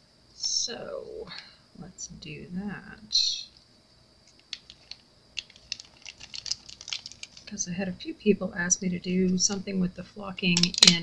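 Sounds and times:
small objects clicking: 0:04.3 - 0:07.5, 0:10.5 - 0:11.0.

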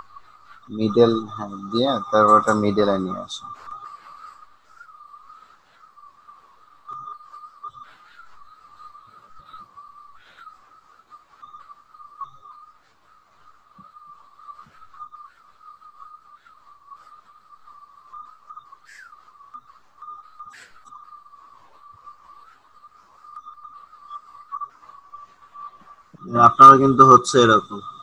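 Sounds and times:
high-pitched whine: 0:00.0 - 0:28.0.

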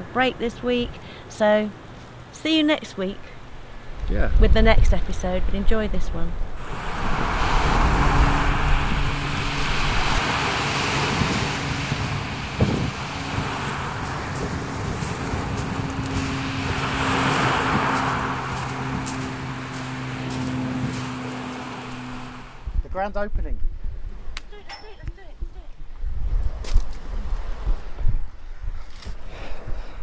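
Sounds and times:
steady low tone: 0:04.5 - 0:17.6
waves breaking on shingle: 0:06.6 - 0:22.6.

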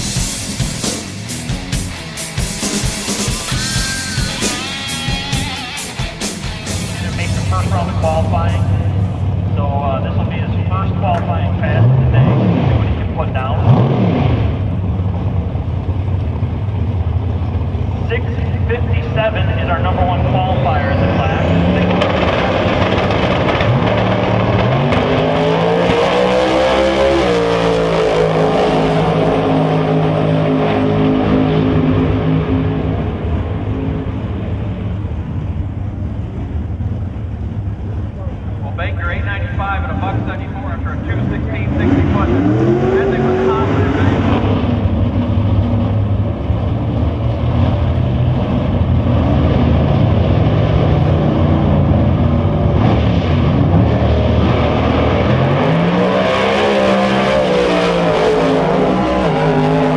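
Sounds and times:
race engine revving: 0:00.0 - 0:35.5, 0:36.1 - 0:59.9
loud racing engines: 0:00.0 - 0:59.9.

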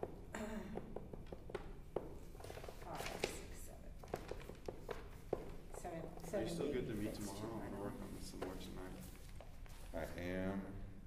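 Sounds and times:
pencil taps and paper rustles: 0:00.8 - 0:06.3.

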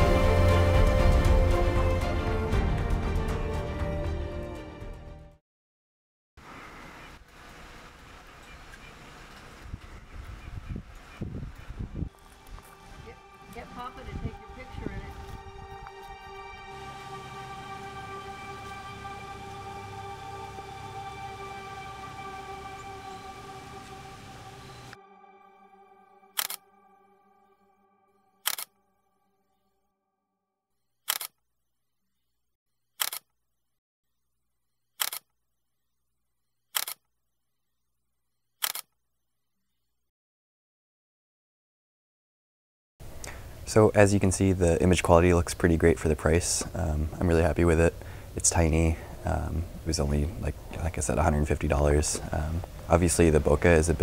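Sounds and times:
faint outdoor hiss: 0:06.4 - 0:25.0, 0:43.0 - 0:54.0
wind buffeting microphone: 0:09.5 - 0:15.8
camera shutter clicking: 0:26.4 - 0:26.6, 0:28.5 - 0:28.7, 0:31.1 - 0:31.3, 0:33.0 - 0:33.2, 0:35.0 - 0:35.2, 0:36.8 - 0:37.0, 0:38.6 - 0:38.9.

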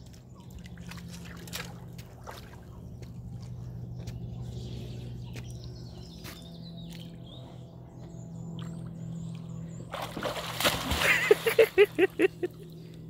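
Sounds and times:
steady low hum: 0:00.0 - 0:13.0
dog splashing in water: 0:00.1 - 0:02.8, 0:09.9 - 0:12.1.

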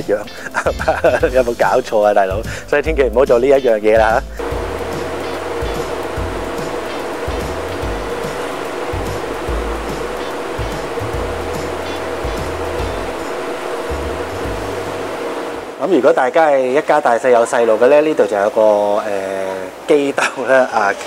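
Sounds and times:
churning sea: 0:03.6 - 0:21.0
steady low drone: 0:04.3 - 0:15.8
wind buffeting microphone: 0:04.4 - 0:15.8
rushing wind: 0:04.4 - 0:15.9.

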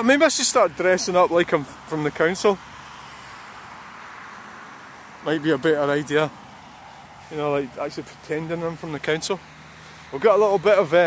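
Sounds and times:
car tyres on wet road: 0:00.0 - 0:11.0.

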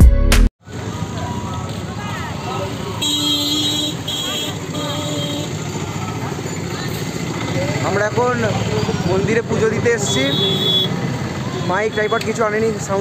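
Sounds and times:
street traffic: 0:00.6 - 0:13.0
murmur of voices: 0:00.7 - 0:13.0
vehicle horn tooting: 0:02.9 - 0:05.7, 0:10.0 - 0:11.0, 0:11.6 - 0:12.4.

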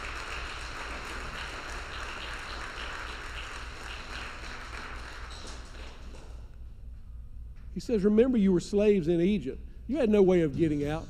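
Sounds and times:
congregation applauding: 0:00.0 - 0:06.4.

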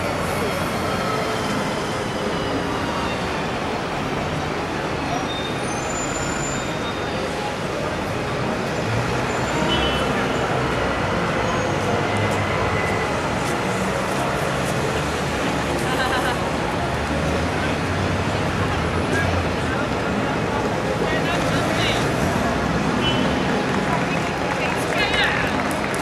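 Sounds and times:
road traffic passing: 0:00.0 - 0:26.0.

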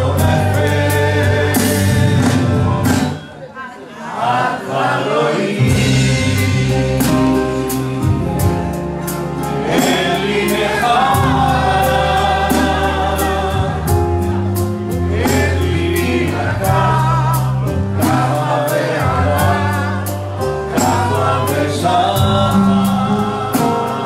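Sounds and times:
man and woman singing: 0:00.0 - 0:02.8, 0:09.7 - 0:14.2, 0:15.2 - 0:24.0
sustained bass notes: 0:00.0 - 0:03.2, 0:05.6 - 0:24.0
accordion: 0:00.0 - 0:03.3, 0:04.4 - 0:24.0.

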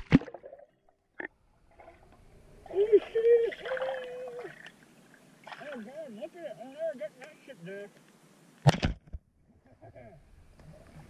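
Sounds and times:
loud thump: 0:08.6 - 0:09.2.

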